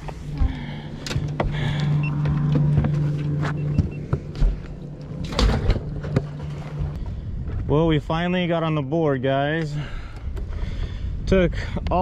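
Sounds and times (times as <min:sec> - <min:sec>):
knocks and clatter on boat deck: 0:00.0 - 0:06.9
boat engine humming: 0:00.0 - 0:07.5.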